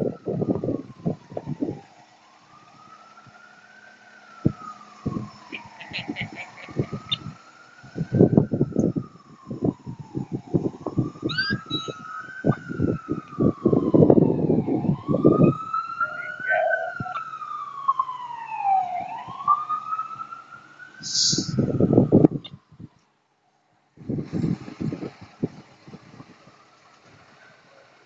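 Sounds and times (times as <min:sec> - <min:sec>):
siren wailing: 0:00.0 - 0:23.0.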